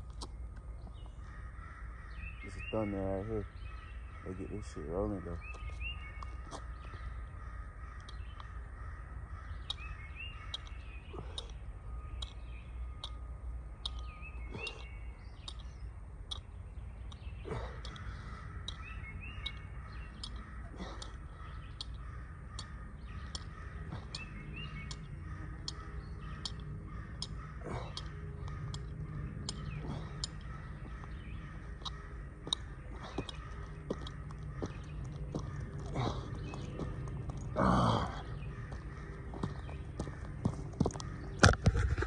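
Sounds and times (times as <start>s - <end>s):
birds chirping: 0.0s - 42.0s
low outdoor background noise: 0.0s - 42.0s
short bird calls: 1.1s - 42.0s.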